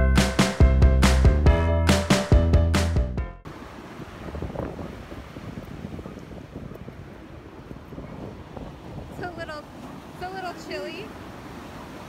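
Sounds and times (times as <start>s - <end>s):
music track: 0.0s - 3.4s
ocean surf washing onto beach: 3.5s - 12.0s
wind buffeting microphone: 3.6s - 12.0s.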